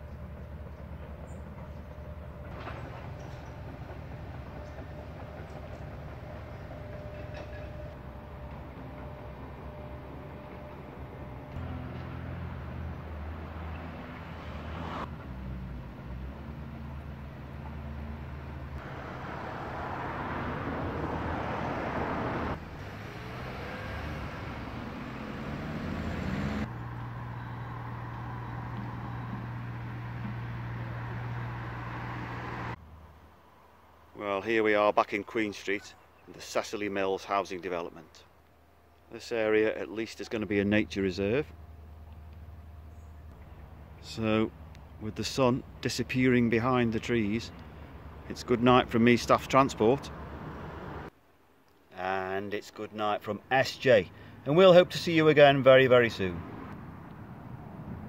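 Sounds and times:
road traffic: 0:00.0 - 0:58.0
engine rising in pitch: 0:03.2 - 0:32.8.

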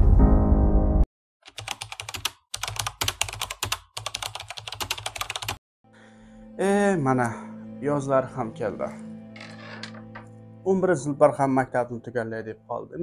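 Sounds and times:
fast typing on computer keyboard: 0:01.4 - 0:05.6.

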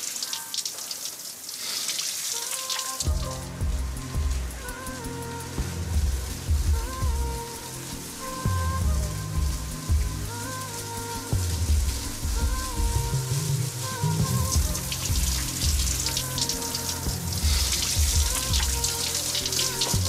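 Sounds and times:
shower running: 0:00.0 - 0:20.0
soft background music: 0:02.3 - 0:20.0.

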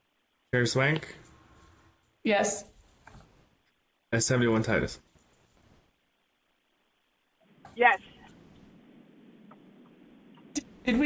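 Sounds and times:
open microphone line hiss: 0:00.0 - 0:11.0
woman speaking: 0:02.3 - 0:02.7, 0:07.8 - 0:08.2, 0:10.6 - 0:11.0.

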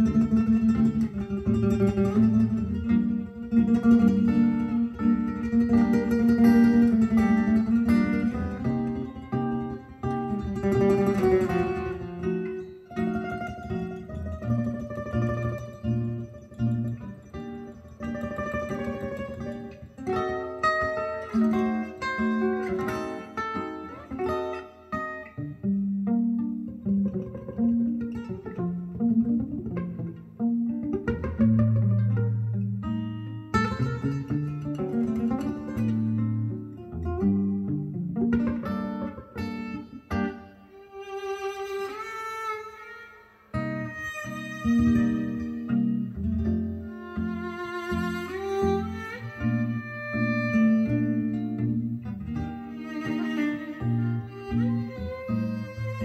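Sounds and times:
guitar music over loudspeakers: 0:00.0 - 0:42.6, 0:43.5 - 0:56.0.

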